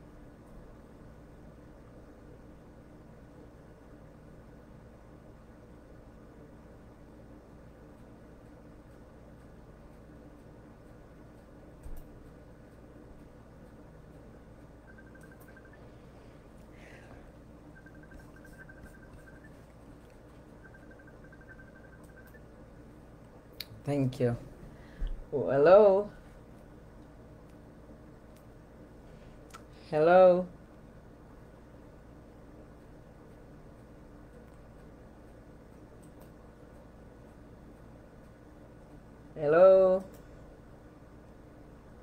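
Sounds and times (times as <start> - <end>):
soft low hum: 0.0 - 42.0
rapid faint high ticking: 7.7 - 23.0.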